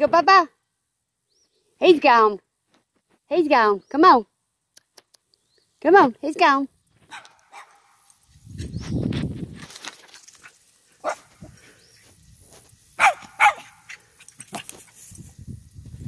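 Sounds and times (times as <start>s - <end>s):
small dog barking: 7.1s - 8.1s, 11.0s - 11.3s, 13.0s - 14.7s.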